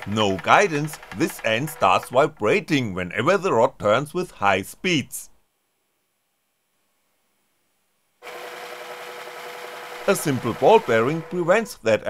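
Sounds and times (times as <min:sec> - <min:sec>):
small electric motor running: 0:08.2 - 0:11.4.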